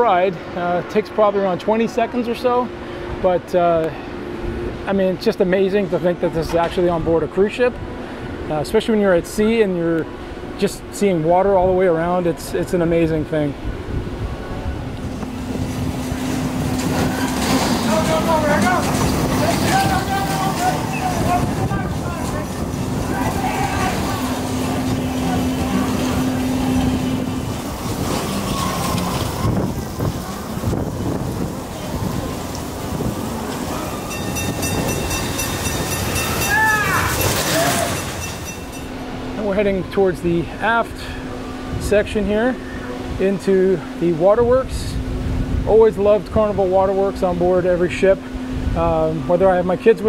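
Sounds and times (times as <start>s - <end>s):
roller coaster cars rolling on track: 0.0s - 50.0s
people's voices: 16.9s - 30.9s.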